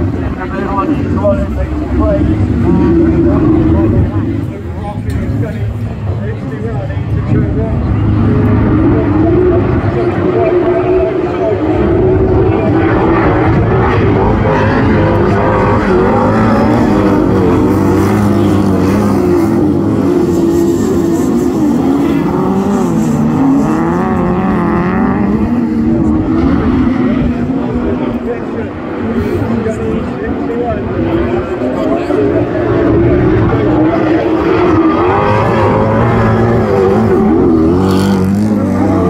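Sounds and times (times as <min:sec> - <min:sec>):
racing car engines revving: 0:00.0 - 0:39.0.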